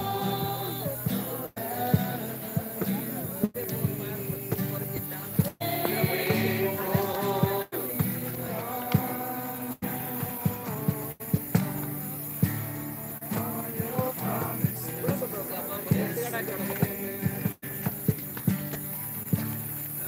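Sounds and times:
group of voices singing: 0.0 - 18.9
acoustic guitar strumming: 0.0 - 20.0.

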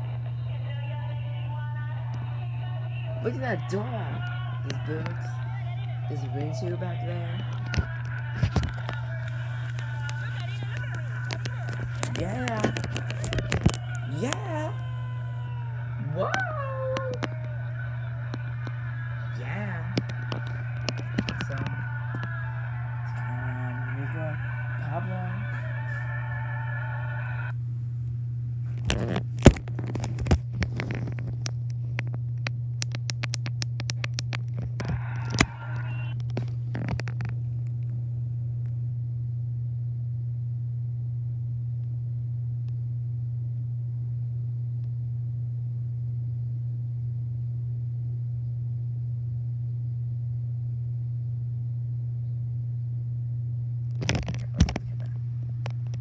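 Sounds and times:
steady low hum: 0.0 - 56.0
phone handling clicks and rubbing: 7.4 - 14.6, 20.0 - 22.3, 54.0 - 56.0.

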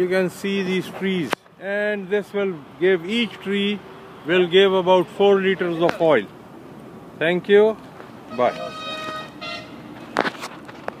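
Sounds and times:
vehicle horn tooting: 8.3 - 9.8.

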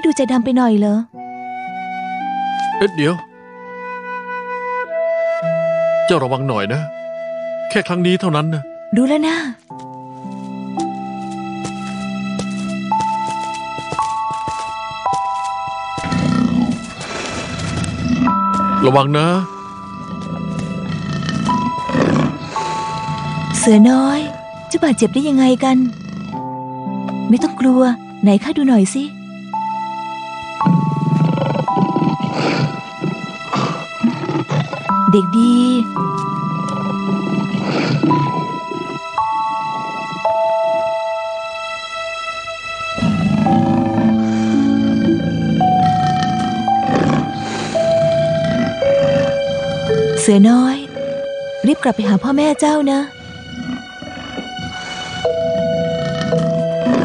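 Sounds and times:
soundtrack music with held notes: 0.0 - 57.0
tiger cub growl: 16.0 - 18.8, 19.8 - 26.6, 30.6 - 35.2, 35.8 - 41.0, 43.0 - 57.0.

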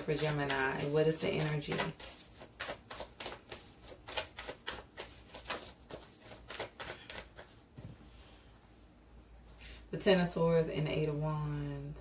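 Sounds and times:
cards being shuffled: 0.0 - 7.9.

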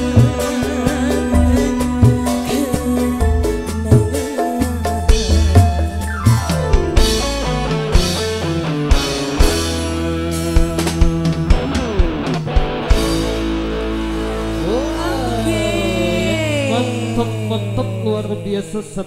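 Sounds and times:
woman singing: 0.0 - 6.1, 14.6 - 19.0
drum kit beat: 0.0 - 18.4
live band playing: 0.0 - 18.9.

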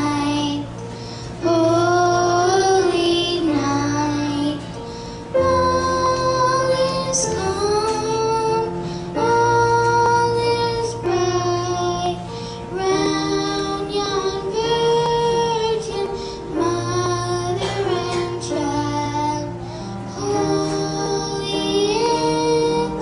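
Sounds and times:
children's choir singing: 0.0 - 0.8, 1.4 - 23.0
keyboard accompaniment: 0.0 - 23.0.

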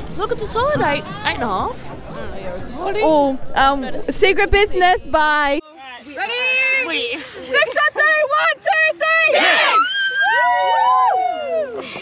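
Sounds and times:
girls shouting a cheer: 8.0 - 11.6.

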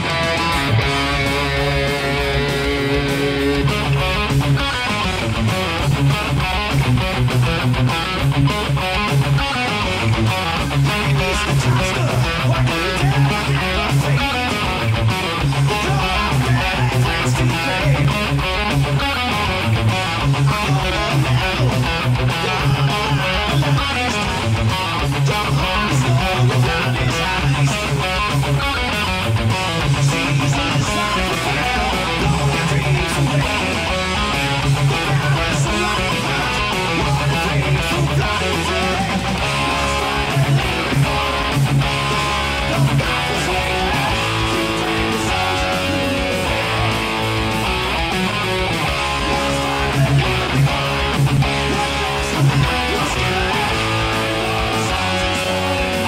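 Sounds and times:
electric guitar heavy metal riff: 0.0 - 56.0
pulsing low bass line: 0.0 - 56.0.

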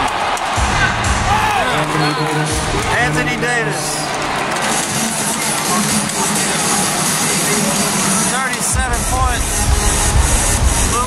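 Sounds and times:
crowd chatter: 0.0 - 11.0
loud music: 0.0 - 11.0
heavy bass beat: 0.5 - 3.4, 8.7 - 11.0.

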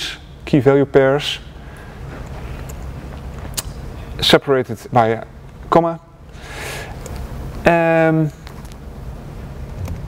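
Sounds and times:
low room noise rumble: 0.0 - 10.0.

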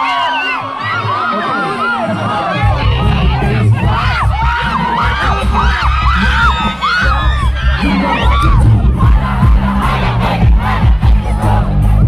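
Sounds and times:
crowd shouting and cheering: 0.0 - 12.0
amplified song with pounding bass: 1.7 - 12.0.

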